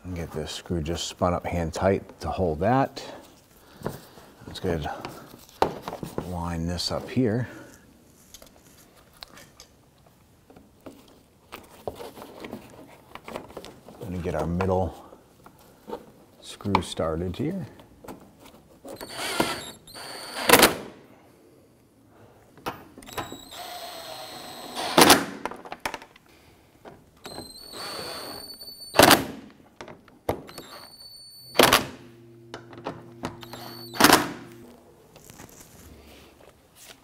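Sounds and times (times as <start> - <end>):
rustle of plastic and tools: 3.1 - 9.8, 10.5 - 16.3, 34.6 - 37.0.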